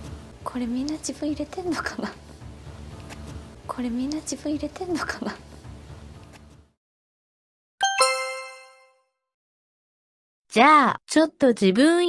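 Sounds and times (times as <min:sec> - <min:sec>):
bell-like chime: 0:07.8 - 0:09.0.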